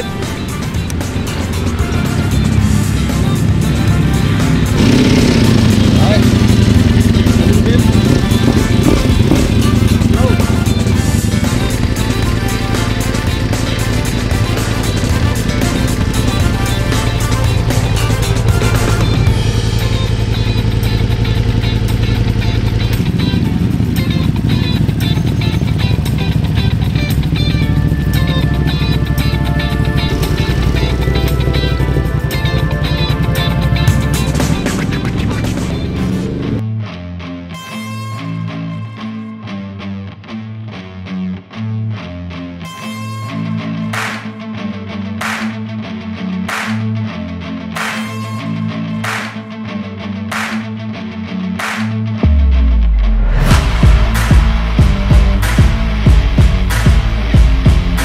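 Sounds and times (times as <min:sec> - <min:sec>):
background music with steady beat: 0:00.0 - 0:36.6, 0:42.7 - 0:44.5, 0:45.2 - 0:45.7, 0:47.7 - 0:49.5, 0:50.3 - 0:50.8, 0:51.6 - 0:58.0
motorcycle engine starting and running: 0:00.0 - 0:36.6, 0:51.6 - 0:58.0.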